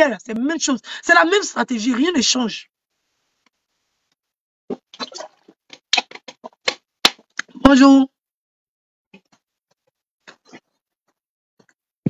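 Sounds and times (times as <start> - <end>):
objects clicking and tapping: 5.7 - 7.2.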